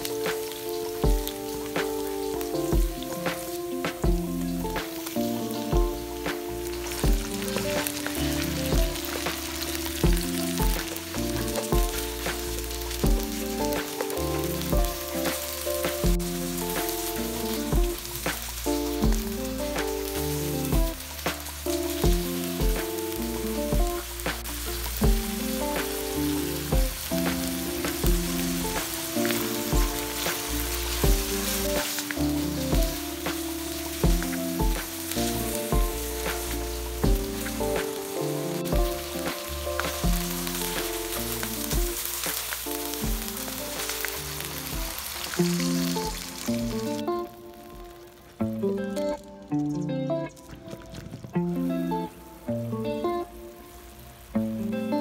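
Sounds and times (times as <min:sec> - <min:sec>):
meat sizzling in oil: 0:00.0 - 0:47.1
background music with beat: 0:00.0 - 0:55.0.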